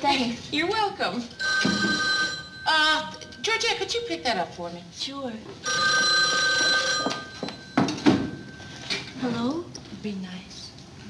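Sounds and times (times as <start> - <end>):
telephone bell ringing: 1.3 - 3.9, 5.6 - 8.9.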